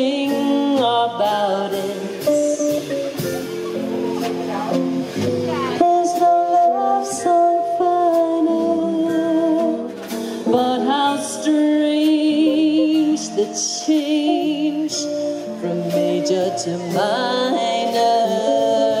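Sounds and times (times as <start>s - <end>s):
woman singing with vibrato: 0.0s - 2.9s, 5.5s - 19.0s
drum kit with light cymbals: 0.0s - 19.0s
electric guitar: 0.0s - 19.0s.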